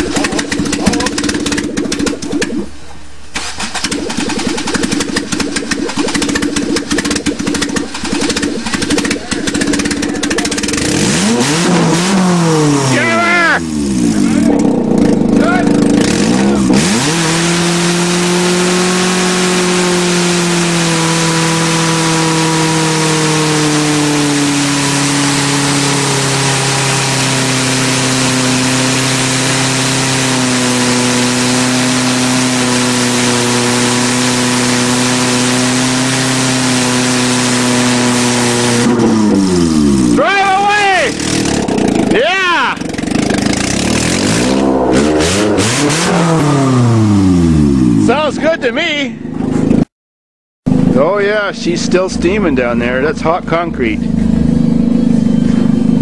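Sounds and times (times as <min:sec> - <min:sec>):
car engine revving: 0:00.0 - 0:48.6, 0:50.7 - 0:56.0.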